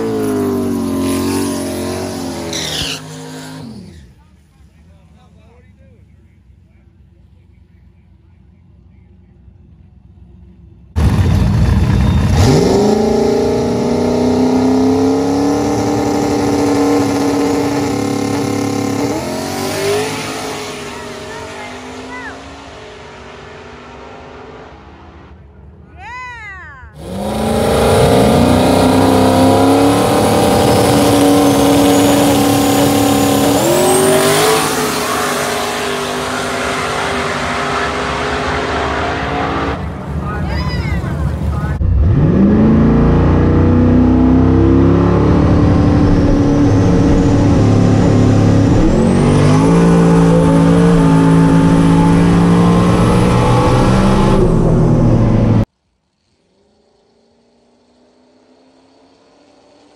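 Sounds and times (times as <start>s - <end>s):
loud engine revving through gear shifts: 0.0s - 4.2s, 11.0s - 24.7s, 27.0s - 39.8s, 41.7s - 55.7s
drag cars launching: 0.0s - 7.8s, 10.9s - 25.8s, 27.0s - 59.9s.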